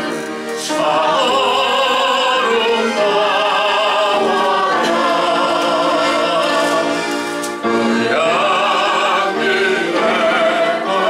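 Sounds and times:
voices singing a hymn: 0.0s - 11.0s.

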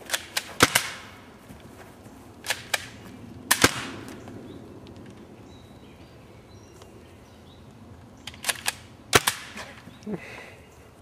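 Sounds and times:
gunshots: 0.1s - 1.1s.

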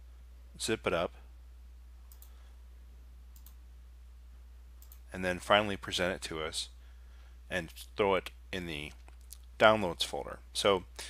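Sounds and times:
faint short clicks: 2.1s - 2.4s.

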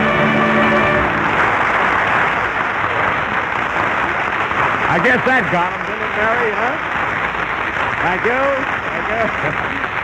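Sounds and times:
orchestra holding chord: 0.0s - 1.7s
audience applause: 0.0s - 10.0s.

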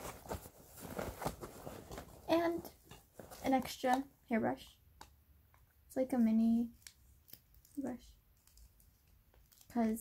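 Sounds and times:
fabric backpack rustling: 0.0s - 3.6s.

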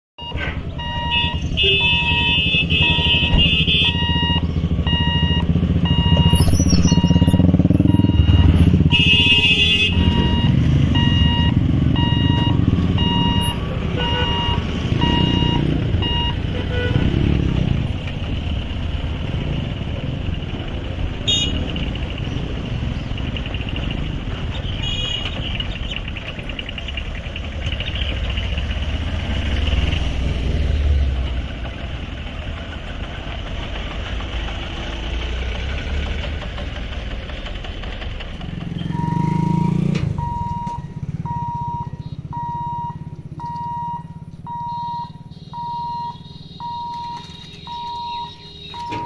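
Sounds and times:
electronic warning beep: 0.2s - 8.8s, 9.9s - 16.5s, 38.9s - 39.5s, 40.2s - 49.0s
vehicles pulling away: 0.2s - 49.0s
vehicle horn honks: 1.0s - 4.4s, 8.3s - 10.5s, 13.4s - 15.2s, 16.0s - 17.3s, 21.2s - 21.7s, 24.6s - 25.5s, 45.1s - 49.0s.

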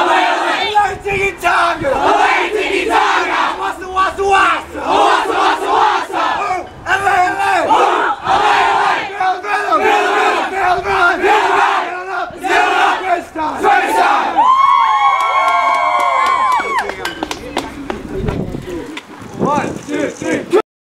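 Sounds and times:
teenagers shouting together: 1.7s - 16.9s.

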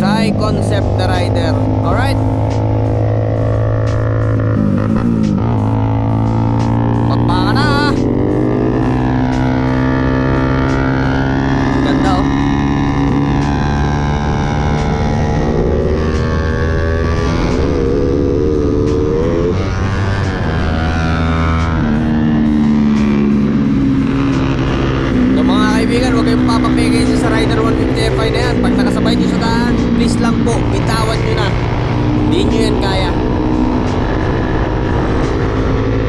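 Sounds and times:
motorcycle engine revving: 0.0s - 36.0s.

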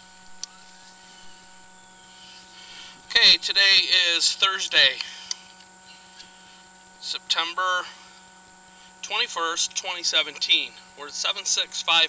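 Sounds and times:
faint electrical hum: 0.0s - 12.0s
high-pitched whine: 0.0s - 12.0s.

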